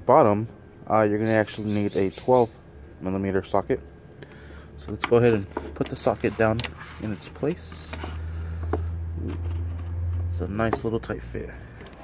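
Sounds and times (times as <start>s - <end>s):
low engine-like hum: 0.0s - 12.0s.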